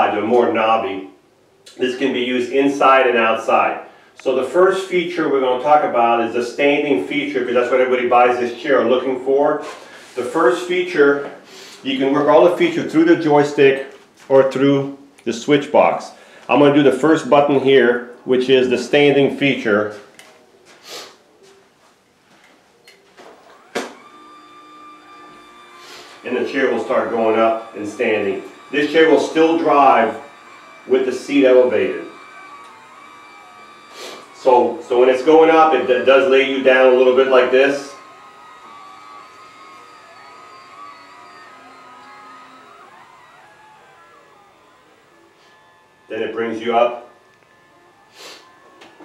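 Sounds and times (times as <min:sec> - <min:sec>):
electric motor whining: 0:23.3 - 0:49.0.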